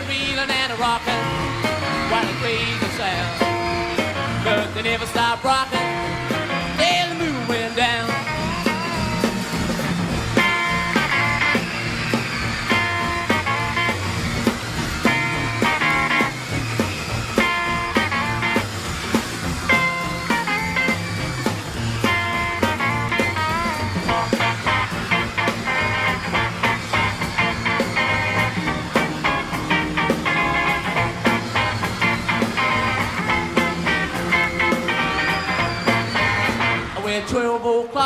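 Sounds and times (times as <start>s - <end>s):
bass and drum beat: 0.0s - 37.2s
electric guitar solo: 0.0s - 37.8s.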